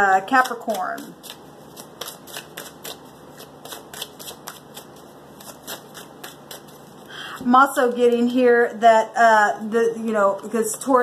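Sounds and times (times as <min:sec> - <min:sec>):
cards being shuffled: 0:00.3 - 0:07.0.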